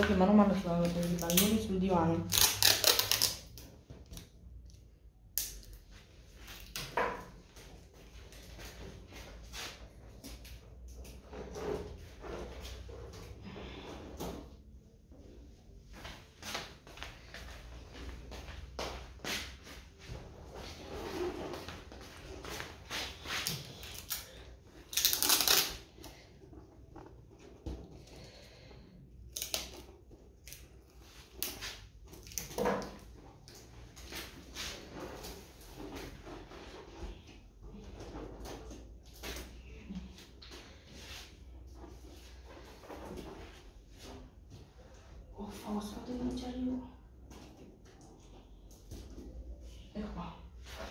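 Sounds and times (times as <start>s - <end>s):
balloons and tape rustling: 0.0s - 6.8s, 15.7s - 44.9s.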